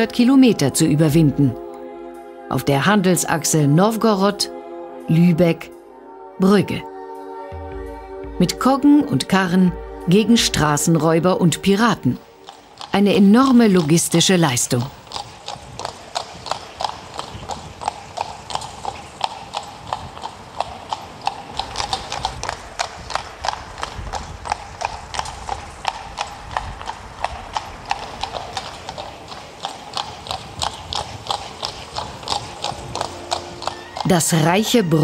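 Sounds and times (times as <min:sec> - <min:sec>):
horse hooves clip-clopping: 0:11.6 - 0:35.0.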